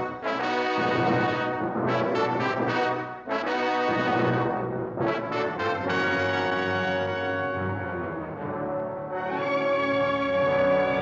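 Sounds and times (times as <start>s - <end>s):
orchestral music led by brass: 0.0s - 11.0s.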